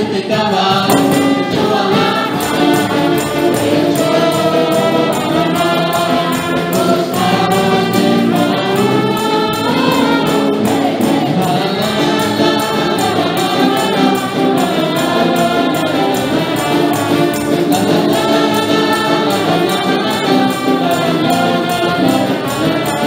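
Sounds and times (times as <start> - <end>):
band playing worship music: 0.0 - 23.0
women singing together: 0.0 - 23.0.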